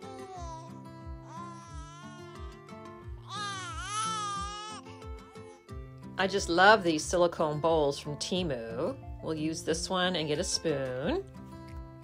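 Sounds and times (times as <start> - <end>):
baby crying: 0.0 - 5.7
background music with steady beat: 0.0 - 12.0.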